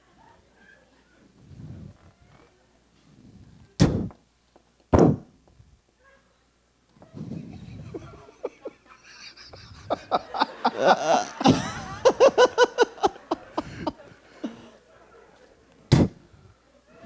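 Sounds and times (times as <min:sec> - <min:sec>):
low crowd murmur: 0:00.0 - 0:03.8, 0:06.0 - 0:17.0.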